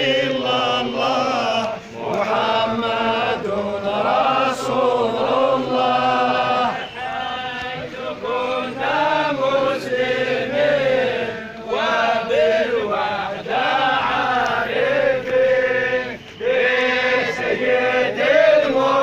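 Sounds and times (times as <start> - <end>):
crowd of men chanting: 0.0 - 19.0.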